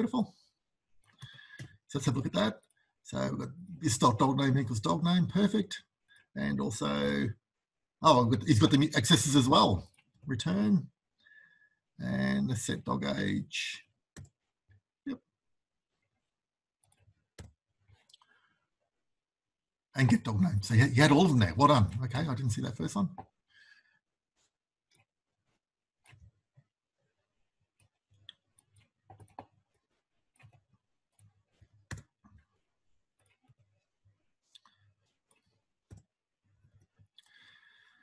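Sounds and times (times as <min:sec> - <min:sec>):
keyboard and mouse clicks: 0:14.2 - 0:14.4, 0:16.8 - 0:18.4, 0:24.9 - 0:26.4, 0:27.8 - 0:33.8, 0:34.5 - 0:37.6.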